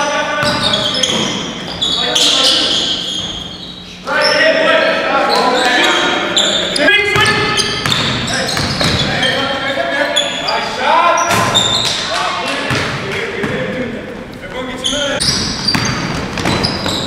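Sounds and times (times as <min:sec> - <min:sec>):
players calling out: 0:00.0 - 0:17.0
sneakers squeaking: 0:00.0 - 0:17.0
basketball bouncing on wooden floor: 0:07.2 - 0:09.1, 0:15.2 - 0:17.0.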